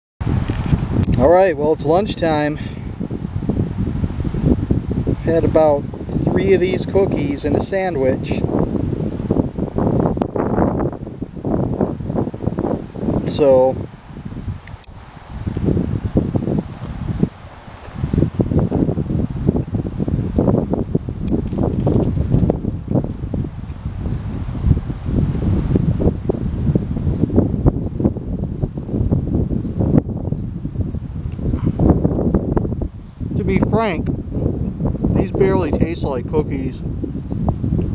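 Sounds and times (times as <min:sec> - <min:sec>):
wind buffeting microphone: 0:00.2 - 0:37.9.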